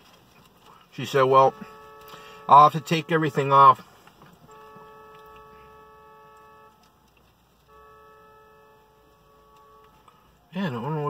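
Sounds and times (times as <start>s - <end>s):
distant vehicle horn blasts: 0.9s - 11.0s.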